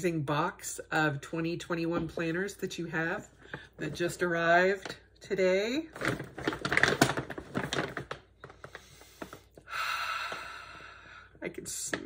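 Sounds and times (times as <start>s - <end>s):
hands tapping plastic-wrapped box: 6.0s - 9.4s.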